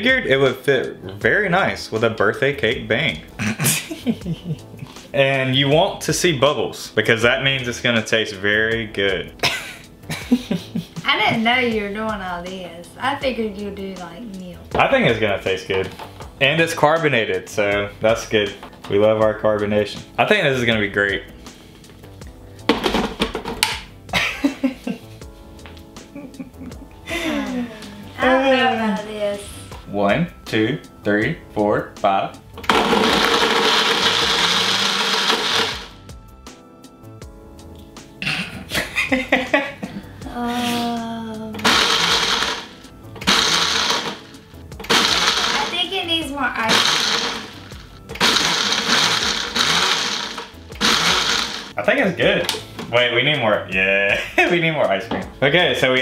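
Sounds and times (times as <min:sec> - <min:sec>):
background music: 0:00.0 - 0:56.0
blender jar clunking and rattling: 0:22.6 - 0:23.8, 0:32.5 - 0:36.0, 0:41.6 - 0:45.7, 0:46.7 - 0:51.7.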